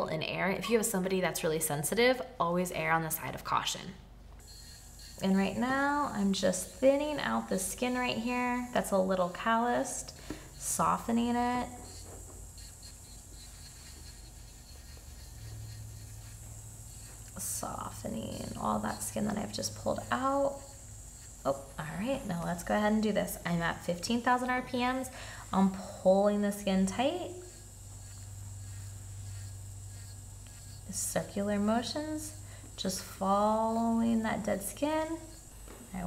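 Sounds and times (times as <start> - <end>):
electric nail drill hum: 4.4 - 36.0.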